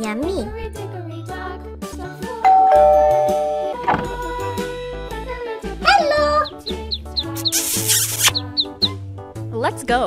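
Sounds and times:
duckling peeping: 0:06.1 - 0:09.0.

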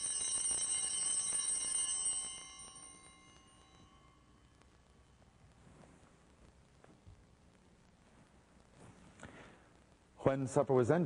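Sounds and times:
altar bells jingling: 0:00.0 - 0:04.6.

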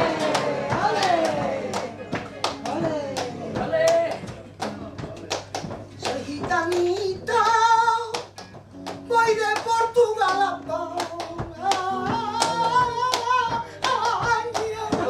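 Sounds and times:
woman singing with vibrato: 0:00.0 - 0:01.9, 0:02.7 - 0:04.3, 0:09.1 - 0:15.0
rhythmic hand-clapping: 0:00.0 - 0:15.0.

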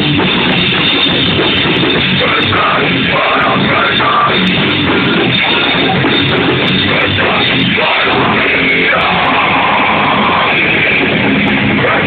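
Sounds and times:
distorted guitars: 0:00.0 - 0:12.0
drums: 0:00.0 - 0:12.0.

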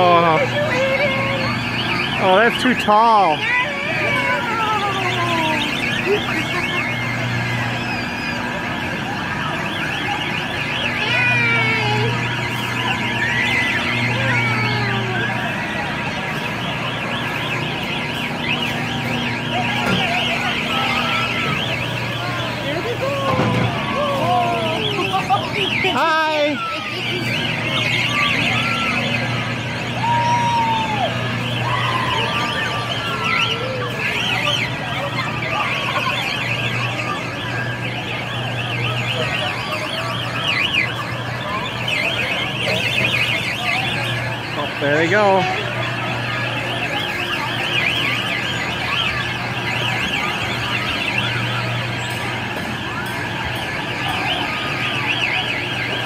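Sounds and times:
children's voices: 0:03.3 - 0:06.9.

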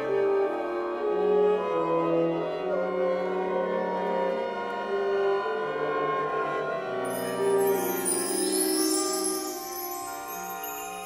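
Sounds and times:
bowed strings chamber music: 0:07.1 - 0:11.0.

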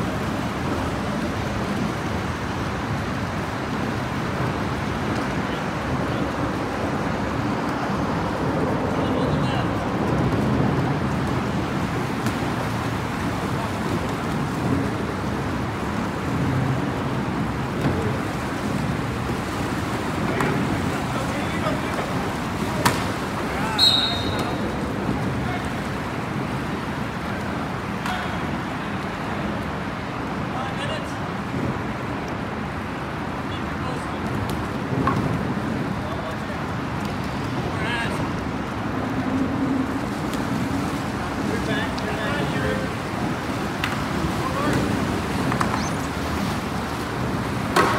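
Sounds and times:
low rumble and hiss: 0:00.0 - 0:47.9.

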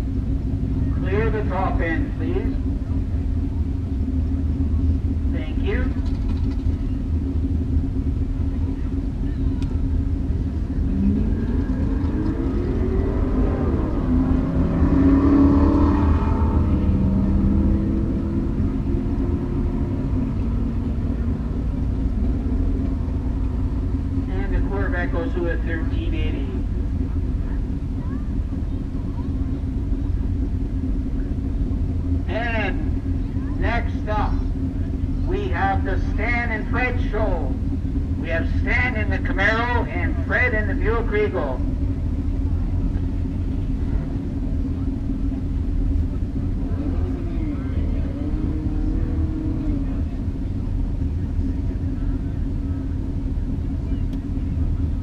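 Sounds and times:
car engines idling: 0:00.0 - 0:55.0
car engine revving past: 0:10.6 - 0:24.0, 0:46.5 - 0:50.6.

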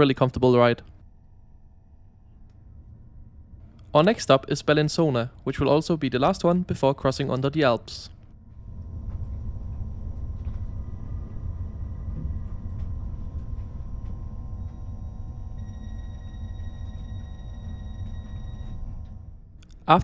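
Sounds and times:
train running gear rumble: 0:08.4 - 0:19.5
faint high steady tones: 0:08.4 - 0:20.0.

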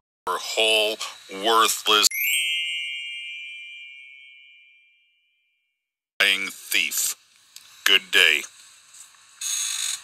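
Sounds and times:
bell-like ding: 0:02.1 - 0:05.4.

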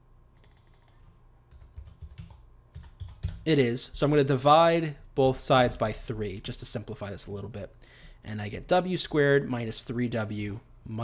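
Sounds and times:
computer keyboard typing clicks: 0:00.4 - 0:03.4.

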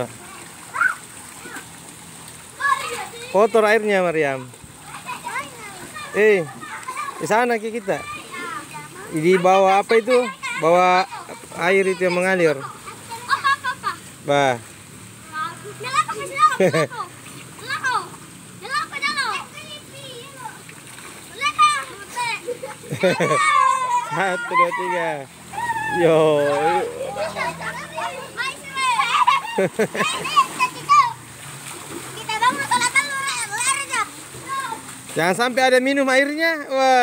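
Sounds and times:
children splashing in water: 0:00.0 - 0:37.0
stream water running: 0:00.0 - 0:37.0.

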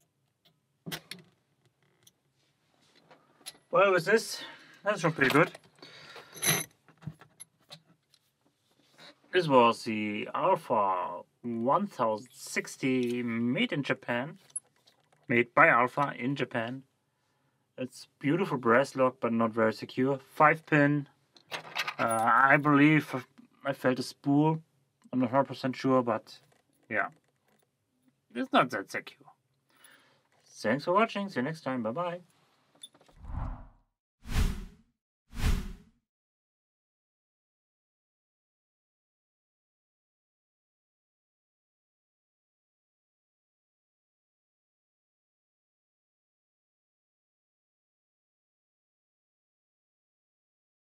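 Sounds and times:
whoosh with deep rumble: 0:33.2 - 0:33.7.

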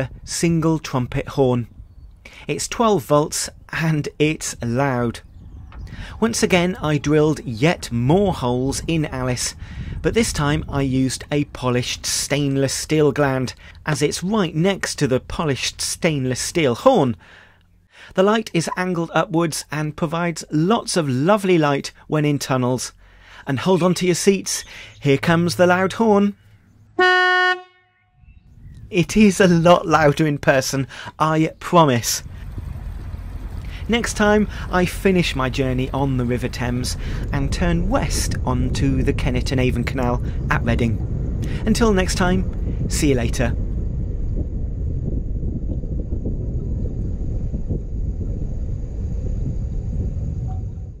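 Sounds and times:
wind buffeting microphone: 0:00.0 - 0:16.4, 0:28.2 - 0:51.0
boat horn blast: 0:27.0 - 0:28.2.

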